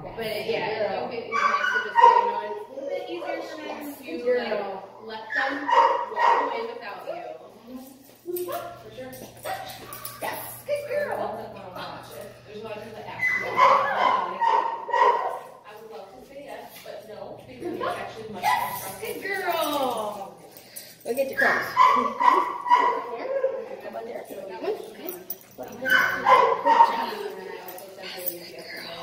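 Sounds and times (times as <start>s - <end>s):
dog crying: 21.4s - 23.8s.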